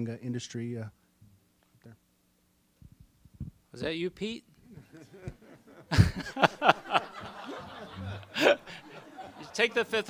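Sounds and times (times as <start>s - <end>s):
person laughing: 4.7s - 9.5s
people chuckling and snickering: 4.7s - 10.0s.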